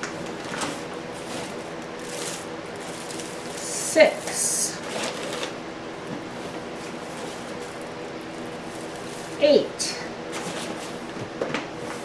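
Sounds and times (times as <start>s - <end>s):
plastic bag rustling: 0.0s - 12.0s
steady low hum: 0.0s - 12.0s.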